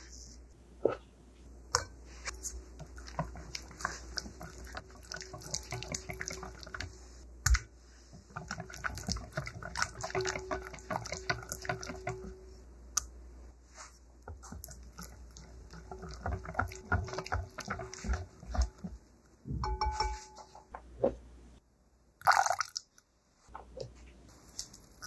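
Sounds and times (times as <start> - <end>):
whisk beating batter in glass bowl: 2.3 - 12.4, 14.3 - 19.0
whisk clinking against glass bowl: 8.4 - 12.4, 15.7 - 18.8, 19.6 - 20.6.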